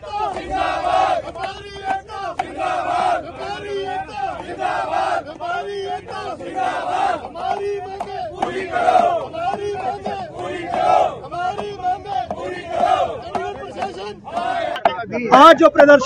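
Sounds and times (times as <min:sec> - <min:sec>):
crowd of men shouting slogans: 0:00.0 - 0:16.0.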